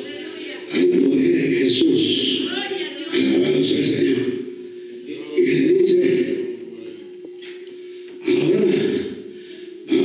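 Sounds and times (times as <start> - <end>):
man preaching through loudspeakers: 0.0 - 7.2, 8.2 - 10.0
steady low hum: 0.0 - 10.0.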